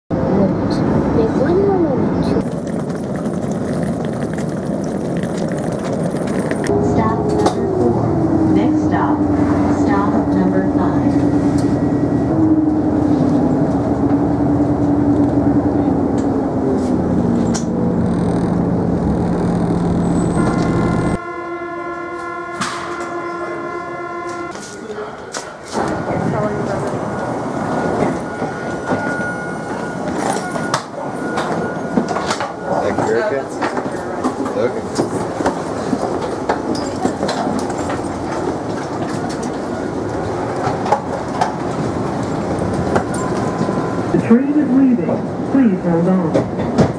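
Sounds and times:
train rumble with motor whine: 0.2s - 21.2s, 22.2s - 46.9s
steady chord-like tone: 17.0s - 24.5s.

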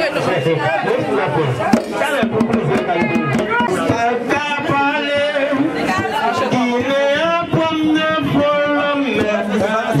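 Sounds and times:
crowd singing and chattering: 0.0s - 10.0s
music: 1.7s - 10.0s
man singing into microphone: 3.1s - 10.0s.

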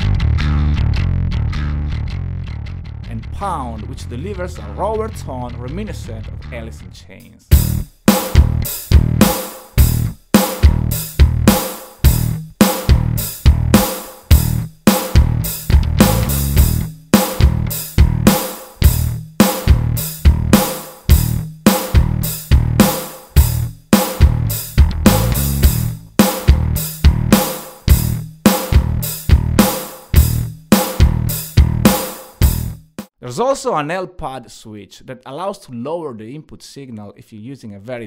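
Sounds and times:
distorted electric bass riff: 0.0s - 6.9s, 7.5s - 33.0s.

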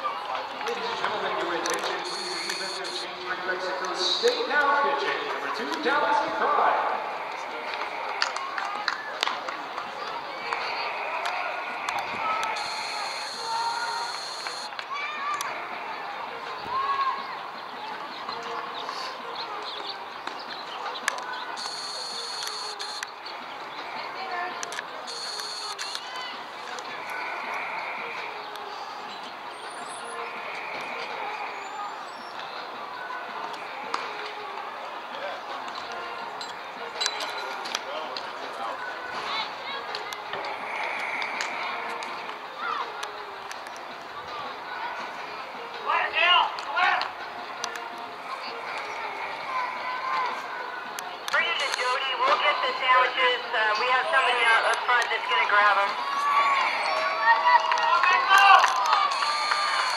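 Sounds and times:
indistinct chatter and calls: 0.0s - 59.9s.

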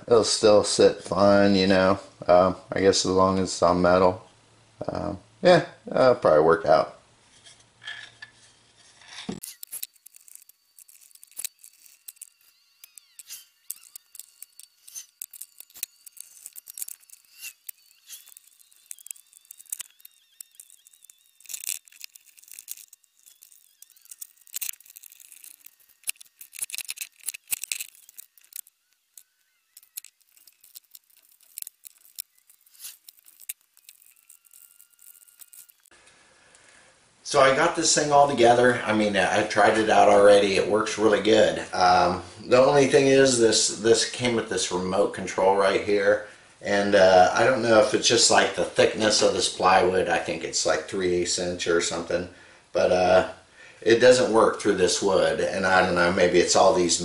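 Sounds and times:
faint high-pitched tones: 9.4s - 36.0s.

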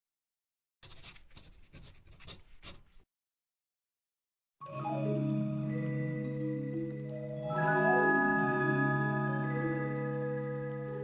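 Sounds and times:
quill pen scratching on paper: 0.8s - 3.1s.

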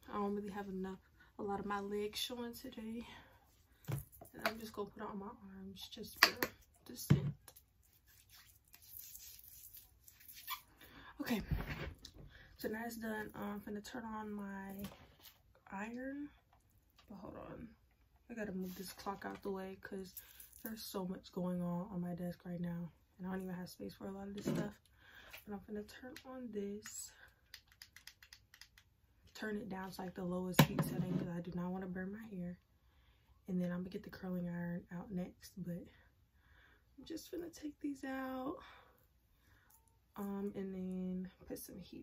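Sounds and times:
hands rubbing lotion on skin: 7.5s - 10.6s.

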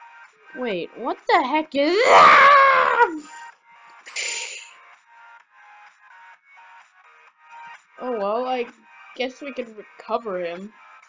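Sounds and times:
choppy background music: 0.0s - 11.0s.

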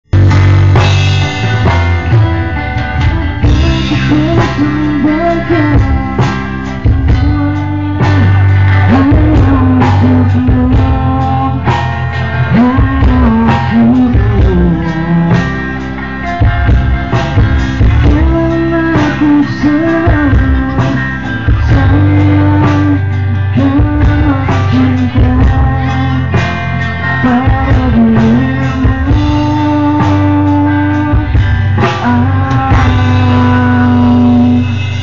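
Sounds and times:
rock band playing live: 0.0s - 35.0s.

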